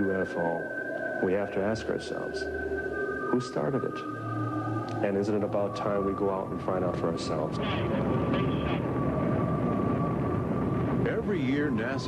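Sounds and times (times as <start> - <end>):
rocket engines rumbling: 0.0 - 12.0.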